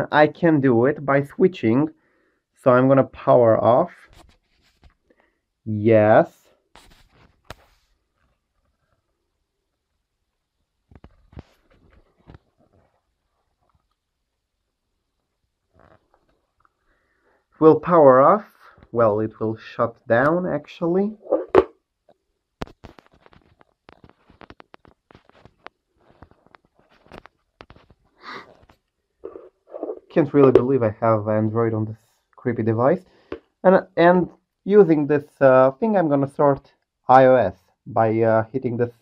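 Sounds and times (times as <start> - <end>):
faint handling rustle: 4.0 - 5.1.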